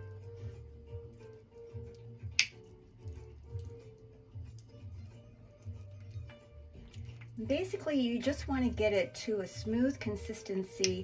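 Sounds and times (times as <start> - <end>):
soft guitar music: 0.0 - 11.0.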